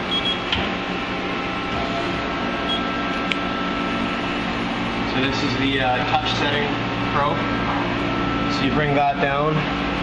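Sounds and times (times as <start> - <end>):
lathe humming: 0.8 - 10.0.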